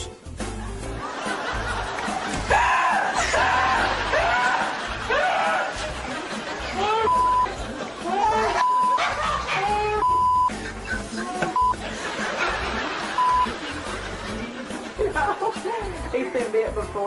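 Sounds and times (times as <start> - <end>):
background music: 0.0 - 17.0
man yelling in fright: 2.5 - 5.8
censor bleeps: 7.1 - 7.5, 8.6 - 9.0, 10.0 - 10.5.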